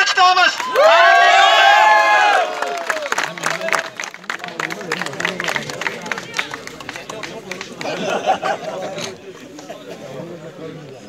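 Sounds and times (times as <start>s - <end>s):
man calling through megaphone: 0.0s - 0.6s
crowd clapping: 0.0s - 9.9s
crowd chattering: 1.3s - 11.0s.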